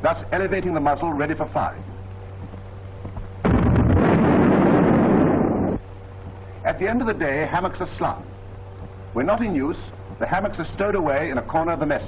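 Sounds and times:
heavy gun blast with rumble: 0:03.4 - 0:05.8.

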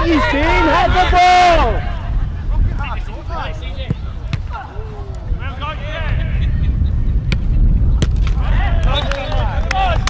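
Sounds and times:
players shouting: 0:00.0 - 0:02.1
football being kicked: 0:03.8 - 0:04.6.

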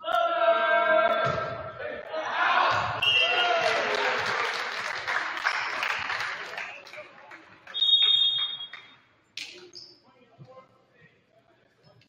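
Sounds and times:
crowd and players shouting and cheering: 0:00.0 - 0:09.0.

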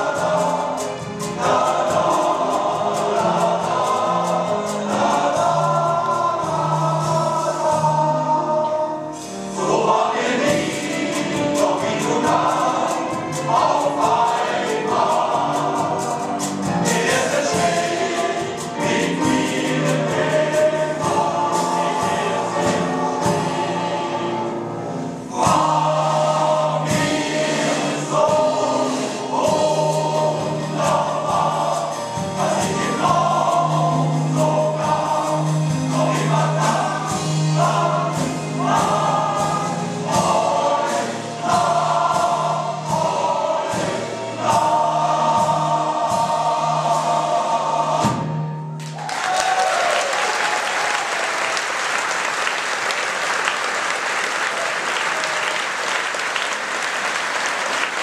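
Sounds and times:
male voice choir singing: 0:00.0 - 0:48.5.

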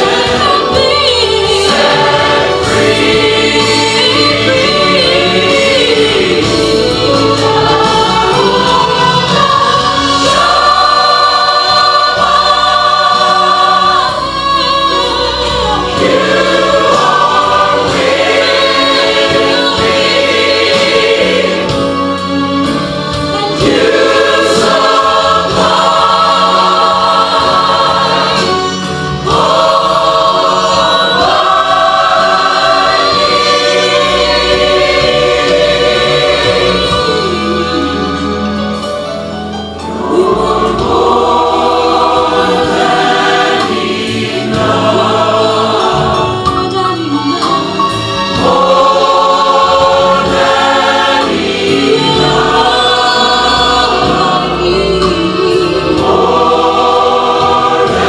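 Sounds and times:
church choir singing gospel: 0:00.0 - 0:58.0.

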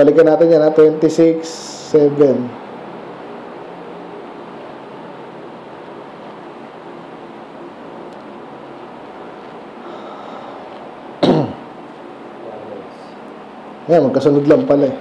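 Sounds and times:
background hiss: 0:00.0 - 0:15.0
man coughing: 0:11.2 - 0:11.7.

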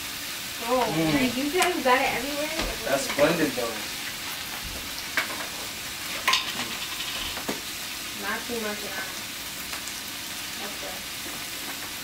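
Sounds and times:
food sizzling in a frying pan: 0:00.0 - 0:12.0.

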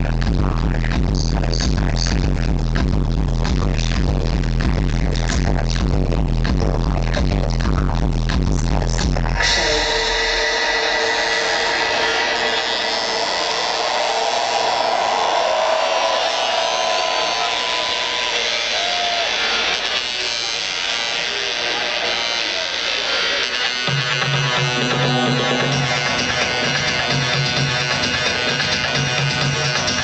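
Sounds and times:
low bass line: 0:00.0 - 0:16.1
buzzy synth: 0:00.0 - 0:30.0
live electronic dance music: 0:00.0 - 0:30.0
crowd voices: 0:09.4 - 0:30.0.

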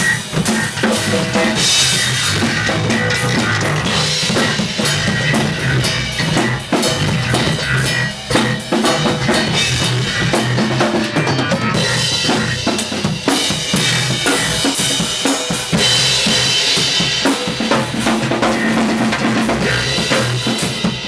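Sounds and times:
drum kit playing groove: 0:00.0 - 0:21.0.

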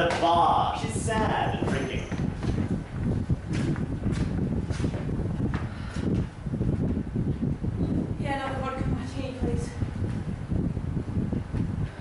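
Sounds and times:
low room rumble: 0:00.0 - 0:12.0
footsteps on stage floor: 0:01.2 - 0:05.7.

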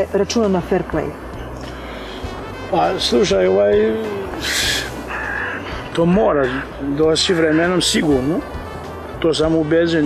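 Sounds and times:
man breathing: 0:01.7 - 0:02.5
man speaking: 0:02.7 - 0:05.0, 0:05.9 - 0:08.5.

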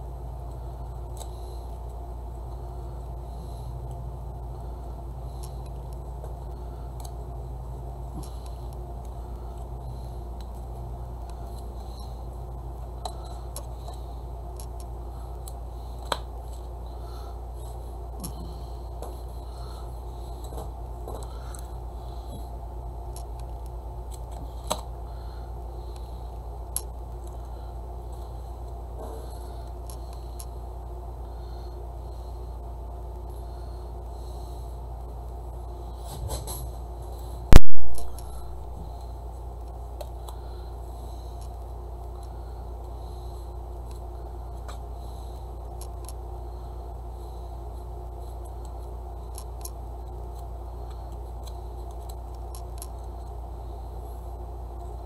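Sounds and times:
steady low hum: 0:00.0 - 0:55.0
loud sharp pop: 0:37.5 - 0:38.1.

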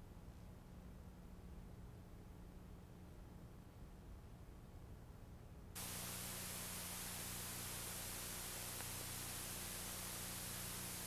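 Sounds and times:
low mains hum: 0:00.0 - 0:11.0
tape hiss: 0:05.8 - 0:11.0.

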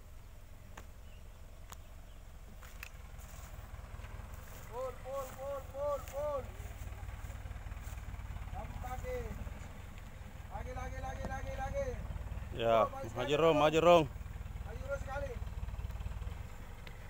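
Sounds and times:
truck engine idling: 0:00.0 - 0:17.0
man shouting: 0:04.6 - 0:06.6.

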